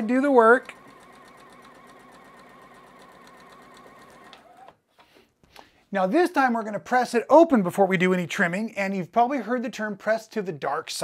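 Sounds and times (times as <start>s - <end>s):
sewing machine running: 0.0s - 4.7s.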